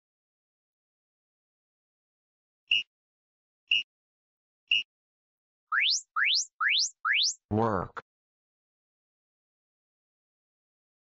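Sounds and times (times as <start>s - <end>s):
rising electronic sweeps: 5.8s - 7.4s.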